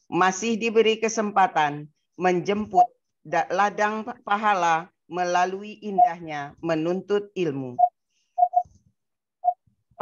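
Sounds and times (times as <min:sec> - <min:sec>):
short high chirps: 0:07.8 - 0:08.7.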